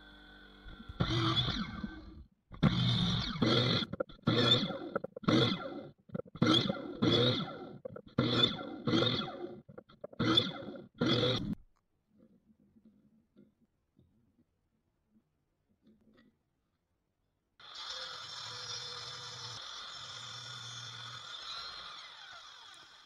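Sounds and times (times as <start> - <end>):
miter saw cutting wood: 0.0 - 11.6, 17.6 - 23.0.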